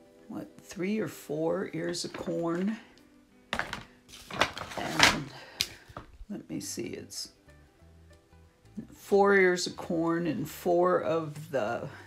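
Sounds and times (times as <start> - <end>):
cardstock pieces rustling and tapping: 3.6 - 6.2.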